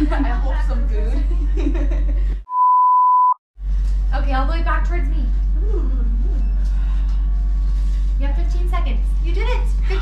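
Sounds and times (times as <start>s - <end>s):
high-pitched censor bleep: 2.5s - 3.4s.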